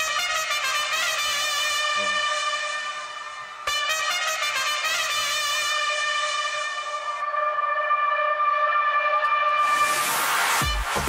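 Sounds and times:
long steady horn-like note: 0.0 - 11.0.

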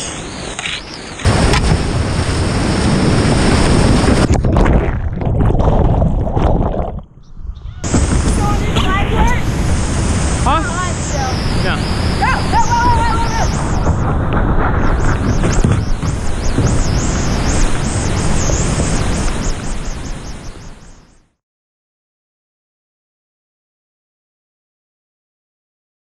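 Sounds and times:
whitewater rushing: 1.2 - 4.4, 7.8 - 21.0.

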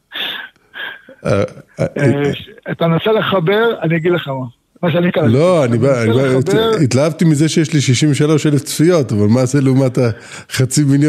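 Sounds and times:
conversation: 1.0 - 11.0.

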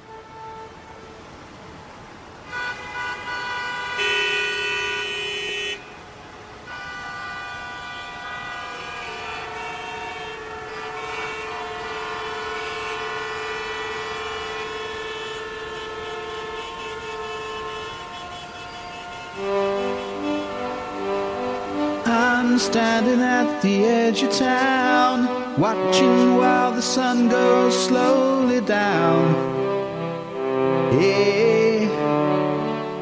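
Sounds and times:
vehicle horns honking: 0.0 - 1.4, 2.4 - 6.0, 6.6 - 33.0.

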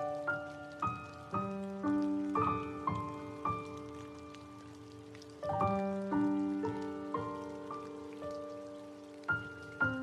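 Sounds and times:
slow piano notes: 0.0 - 10.0.

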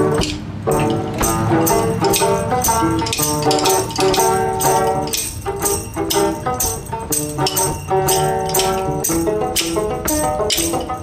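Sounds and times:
banjo playing: 0.0 - 11.0.

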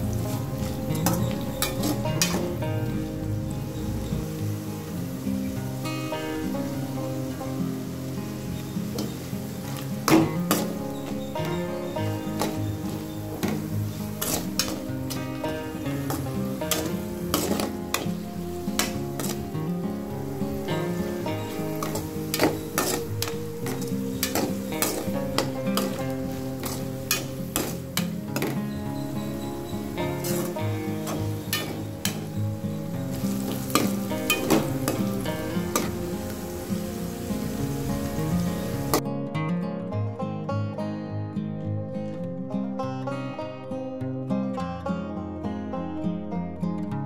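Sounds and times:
onion sizzling in hot oil: 0.0 - 39.0
background music: 0.0 - 47.0
spatula scraping and tapping: 0.3 - 2.5, 8.9 - 11.3, 12.3 - 15.4, 16.0 - 19.5, 21.4 - 32.4, 33.1 - 36.0.

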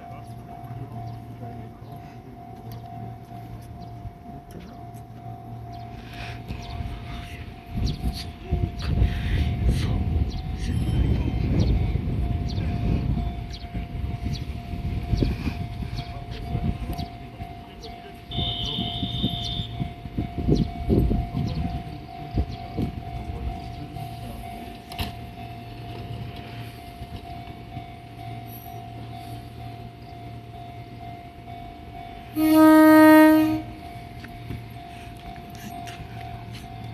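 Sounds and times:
electric train whine and hum: 0.0 - 36.9
brief high tone: 18.3 - 19.8.

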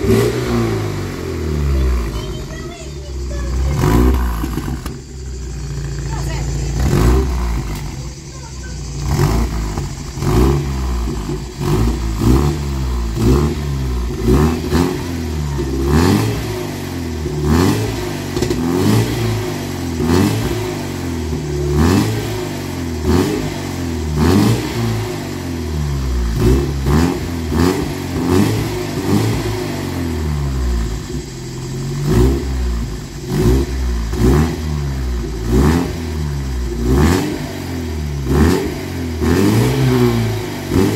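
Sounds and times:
car engine revving: 0.0 - 40.9.

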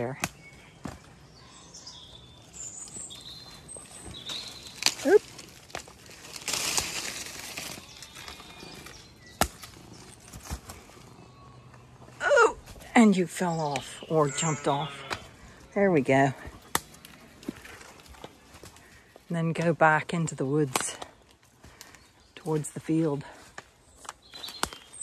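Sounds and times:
bird chirps: 0.0 - 5.2
footsteps in undergrowth: 1.9 - 19.8, 20.6 - 25.0
rustling among leaves: 2.5 - 11.3.

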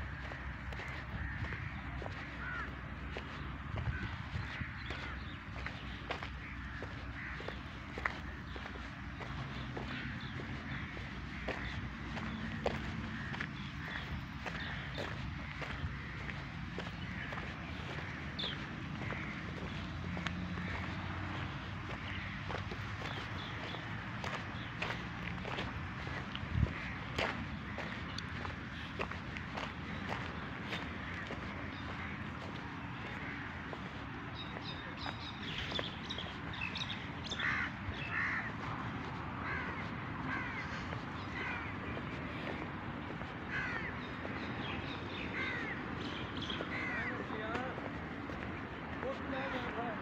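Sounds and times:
outdoor background hum: 0.0 - 47.1
birds calling: 0.0 - 50.0
footsteps on dirt path: 0.0 - 50.0.

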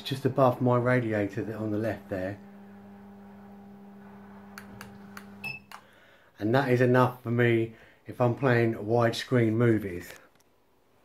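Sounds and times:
projector screen motor humming: 0.0 - 5.6.

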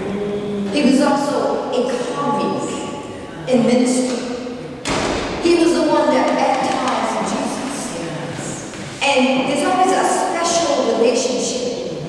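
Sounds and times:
woman preaching into microphone: 0.7 - 4.4, 5.4 - 12.0
sudden thump: 4.8 - 5.5.

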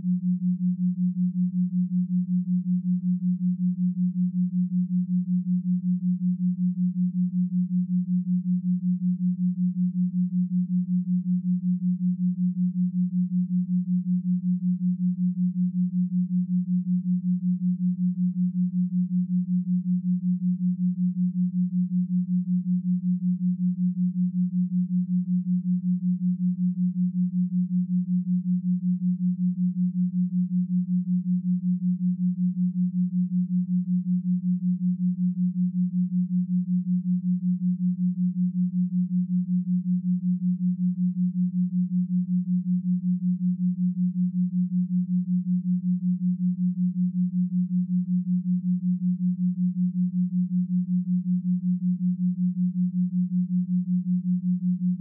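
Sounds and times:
low pulsing pure tone: 0.0 - 55.0.

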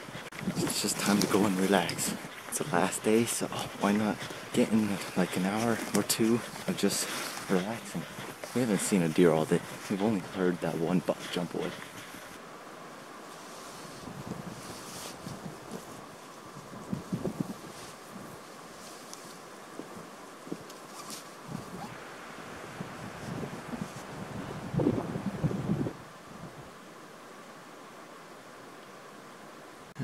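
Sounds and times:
footsteps on dry grass: 0.0 - 12.3
rustling: 0.0 - 12.4, 13.3 - 22.1
wind buffeting microphone: 0.0 - 12.4, 14.0 - 18.5, 21.4 - 26.7.

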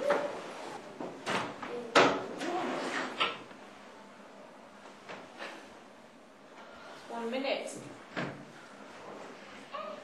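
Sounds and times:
low classroom room noise: 0.0 - 10.0.

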